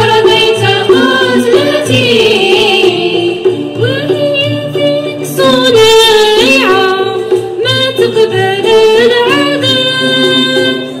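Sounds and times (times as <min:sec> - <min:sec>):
ouds and violins playing: 0:00.7 - 0:11.0.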